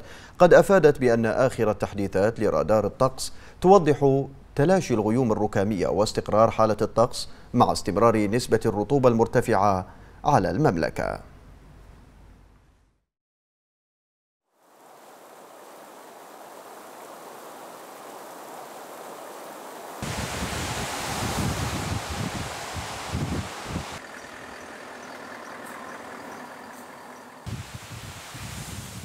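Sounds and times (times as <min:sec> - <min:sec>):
heavy rain: 0:14.7 - 0:24.3, 0:27.4 - 0:29.0
floodwater rushing over rocks: 0:14.7 - 0:25.0, 0:26.7 - 0:29.0
tyres hissing on wet road: 0:14.7 - 0:29.0
low rumbles: 0:20.0 - 0:28.3
passing cars: 0:20.4 - 0:27.7.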